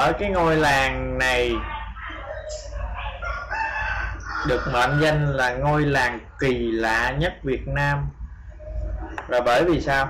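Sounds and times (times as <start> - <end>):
high-pitched animal call: 2.1 - 5.3.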